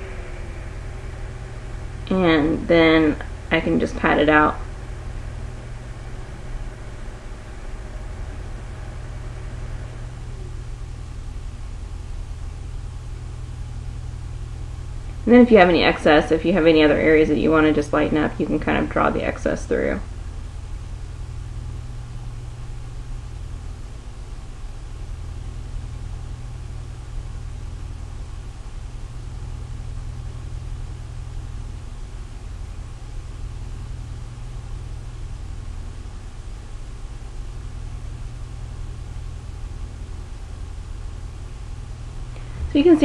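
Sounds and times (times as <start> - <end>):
faint hiss: 0.0 - 17.2
steady low hum: 0.0 - 43.0.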